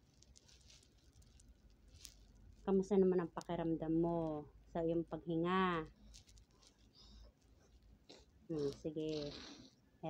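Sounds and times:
rustles: 0.0 - 3.6, 5.8 - 9.7.

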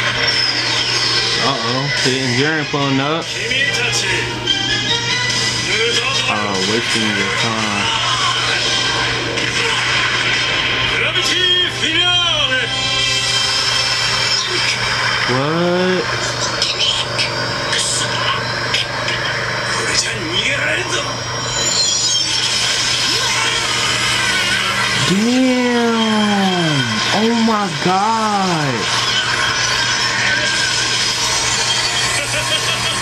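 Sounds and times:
harsh rushing energy noise: 12.7 - 33.0
character speaking: 25.0 - 28.8.

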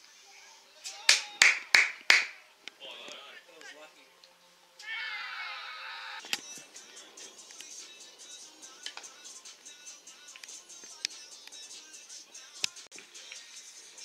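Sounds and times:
steady high chirping: 6.4 - 14.0.

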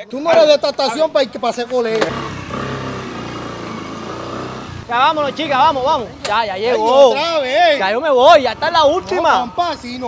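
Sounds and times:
small motorcycle engine running: 2.0 - 5.7.

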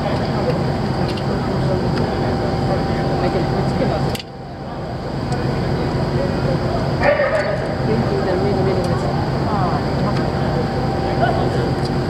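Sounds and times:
ship diesel engines humming: 0.0 - 12.0.

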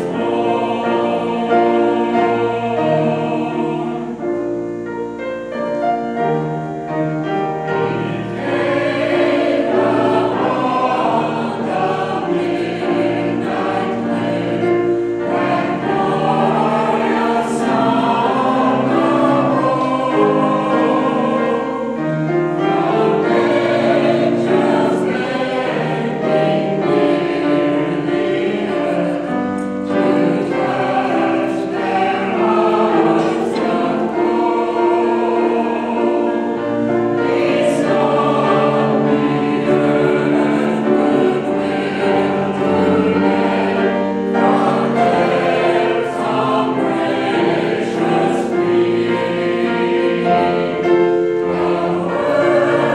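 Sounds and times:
mixed choir singing in harmony: 0.0 - 52.9.

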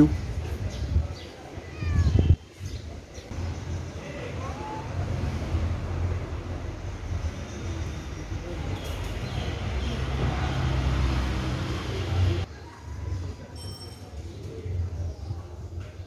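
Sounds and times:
distant road traffic rumble: 0.0 - 12.5.

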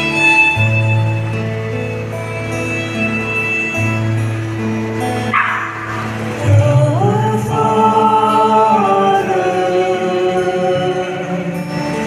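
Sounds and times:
held instrumental notes: 0.0 - 12.0
people singing a hymn: 5.4 - 12.0.

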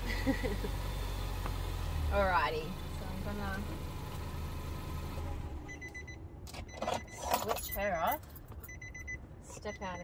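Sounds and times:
car engine idling: 0.0 - 6.5.

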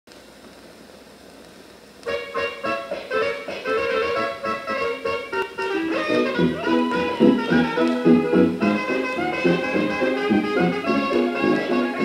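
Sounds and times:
record surface hiss: 0.1 - 12.0.

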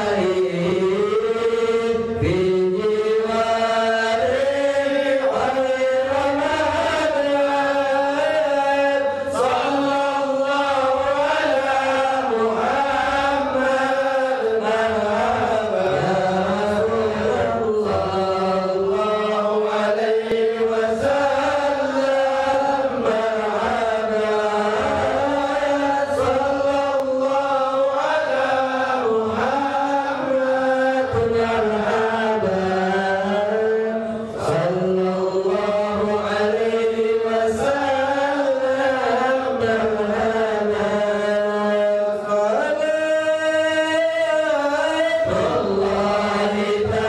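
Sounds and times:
men chanting together: 0.0 - 47.0.

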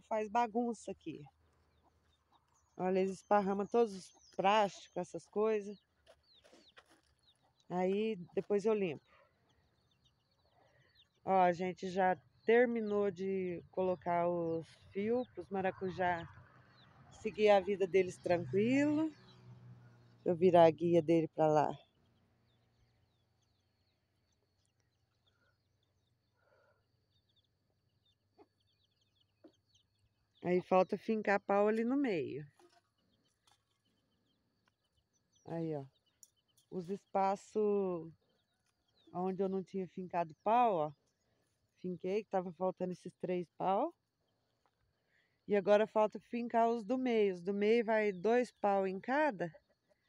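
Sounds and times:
small birds chirping: 0.0 - 50.0.

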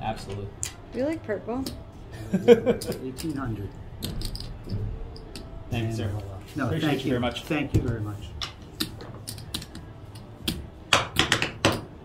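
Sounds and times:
casino chips clicking: 8.8 - 11.8.

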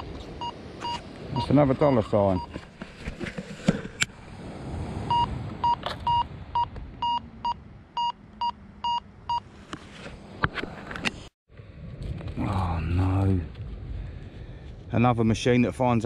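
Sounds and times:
metal detector short beeps: 5.1 - 8.1.

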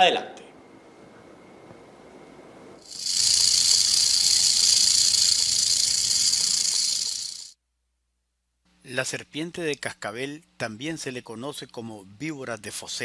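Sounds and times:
rattlesnake rattling: 2.8 - 7.6.

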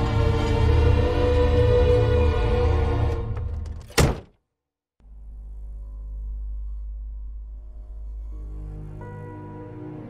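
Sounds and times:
tense film score low chords: 0.0 - 3.6, 5.0 - 10.0.

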